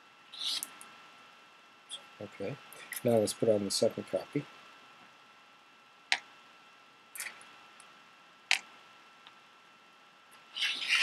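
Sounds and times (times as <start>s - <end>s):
pebble sliding across paper: 10.5s - 11.0s.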